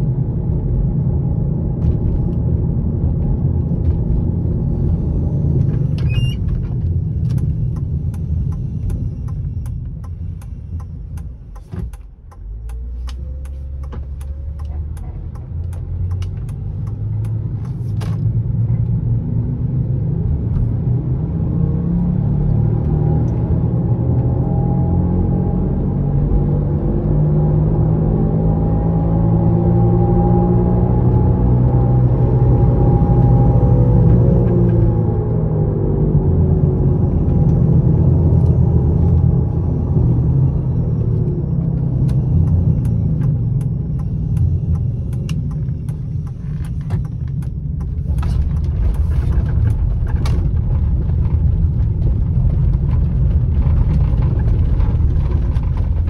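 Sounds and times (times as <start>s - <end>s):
car engine running: 0.0s - 19.3s, 29.4s - 56.0s
tyre and road noise: 0.0s - 56.0s.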